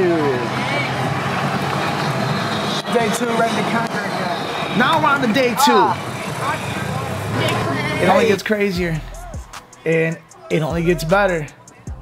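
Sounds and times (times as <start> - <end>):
golf cart driving: 0.0 - 8.8
voices of people: 0.0 - 12.0.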